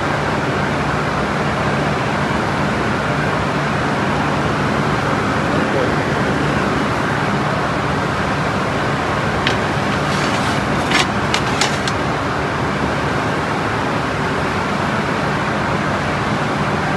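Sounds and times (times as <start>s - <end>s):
low mechanical hum: 0.0s - 16.9s.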